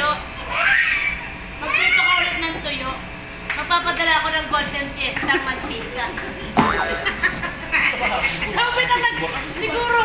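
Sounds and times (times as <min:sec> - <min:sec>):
people talking and laughing: 0:04.9 - 0:10.0
loud sliding-pitch sound: 0:06.6 - 0:07.3.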